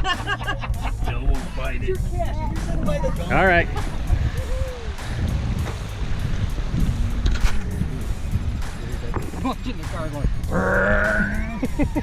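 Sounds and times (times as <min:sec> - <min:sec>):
wind buffeting microphone: 0:00.8 - 0:12.0.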